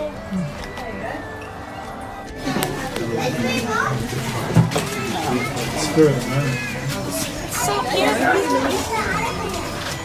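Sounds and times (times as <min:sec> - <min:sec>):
background chatter of voices: 0:00.0 - 0:10.0
children talking: 0:00.0 - 0:10.0.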